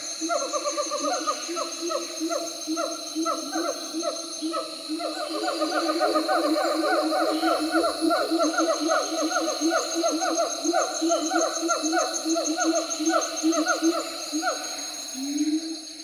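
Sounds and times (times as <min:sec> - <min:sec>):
monkeys hooting: 0:00.2 - 0:15.8.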